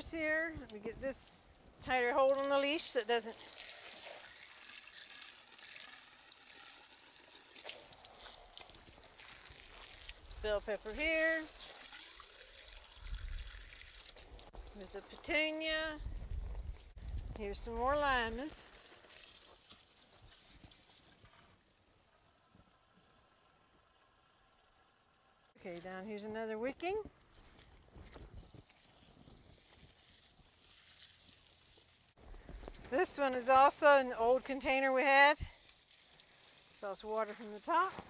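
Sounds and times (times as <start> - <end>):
hose water pouring into soil: 0.0 - 38.0.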